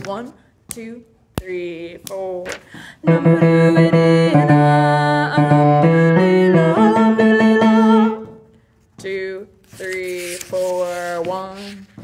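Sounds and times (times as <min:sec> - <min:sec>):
woman singing bass line: 0:03.0 - 0:09.1.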